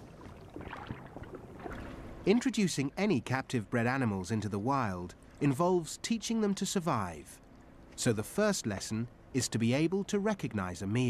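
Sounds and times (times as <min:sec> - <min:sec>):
aquarium water sloshing: 0:00.0 - 0:09.3.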